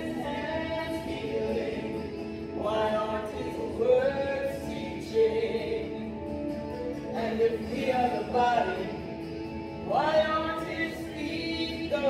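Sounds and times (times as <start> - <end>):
person singing worship song: 0.0 - 6.3, 7.1 - 12.0
musical backing: 0.0 - 12.0.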